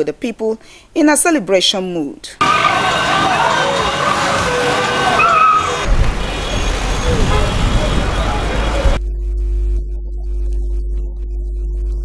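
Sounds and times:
crowd shouting: 2.4s - 9.0s
motorcycle engines running: 2.4s - 9.0s
low steady hum: 8.9s - 12.0s.

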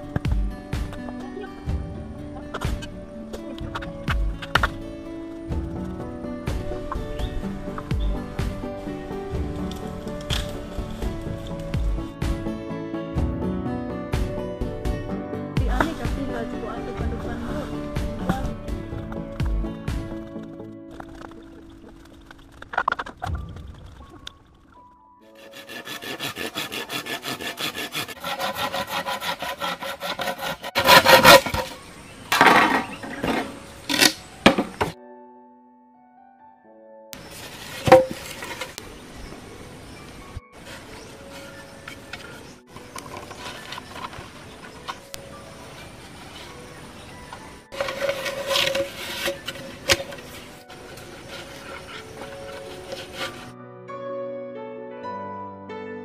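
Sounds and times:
background music: 0.0s - 56.0s
handsaw sawing bamboo: 25.3s - 31.8s, 47.7s - 53.5s
rope rubbing and scraping: 25.3s - 35.0s, 37.2s - 38.8s, 40.6s - 53.5s.

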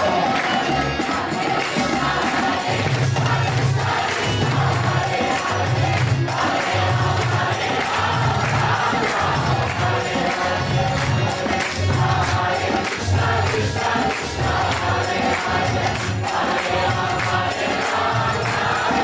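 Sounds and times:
group chanting in unison: 0.0s - 19.0s.

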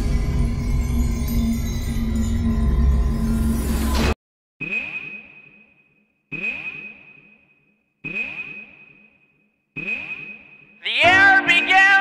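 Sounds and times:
electronic sonar pings: 4.6s - 10.8s
music: 11.0s - 12.0s.

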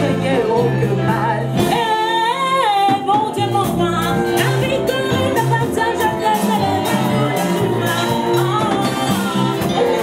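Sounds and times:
band playing: 0.0s - 10.0s.

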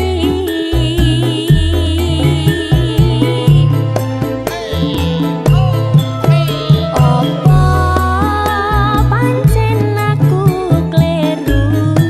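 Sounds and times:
dance music with drums and bass: 0.0s - 12.0s.

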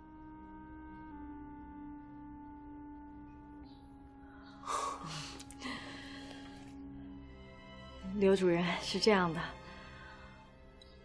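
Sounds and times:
soft background score: 0.0s - 11.0s.

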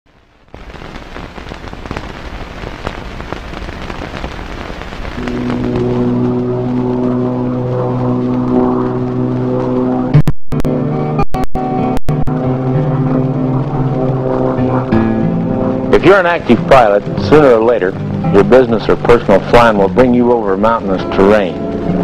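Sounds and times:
film crackle and hiss: 0.1s - 10.8s, 11.8s - 22.0s
sustained drone of held tones: 5.1s - 22.0s.

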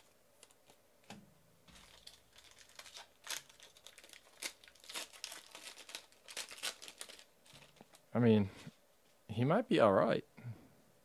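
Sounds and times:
foil wrapper crackling: 0.0s - 8.0s.

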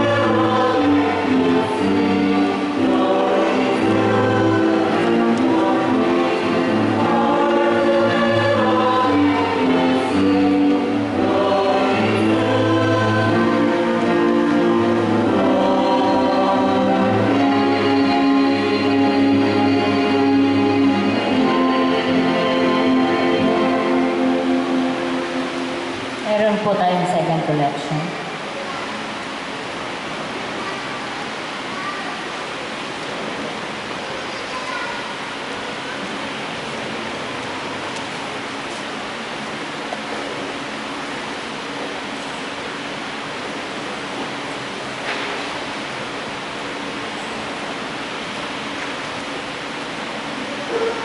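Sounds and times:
choir singing a hymn: 0.0s - 26.6s
steady rushing hiss: 0.0s - 51.0s
faint indistinct voices: 26.5s - 29.4s, 30.3s - 39.0s.

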